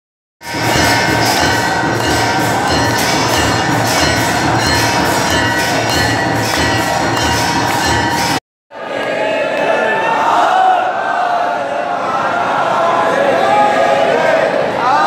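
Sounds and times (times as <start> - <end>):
steady rhythmic beat: 0.4 - 8.4
temple bells ringing: 0.4 - 8.4.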